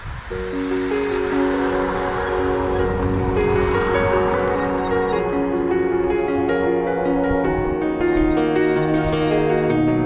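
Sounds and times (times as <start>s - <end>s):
steady rushing noise: 0.0s - 9.7s
soft ambient chords: 0.4s - 10.0s.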